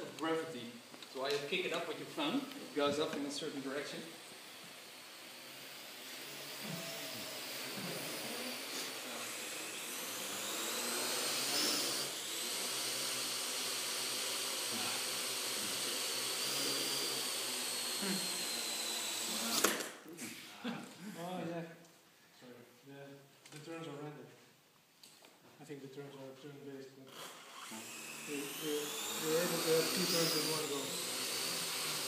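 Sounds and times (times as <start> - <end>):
drone rotors whining: 6.1 - 13.7.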